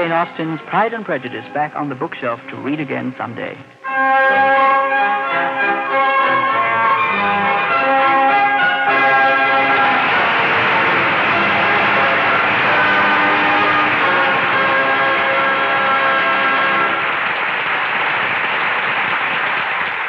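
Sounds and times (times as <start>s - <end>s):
orchestra playing held chords: 0.0s - 17.4s
steady rush of noise: 0.0s - 20.0s.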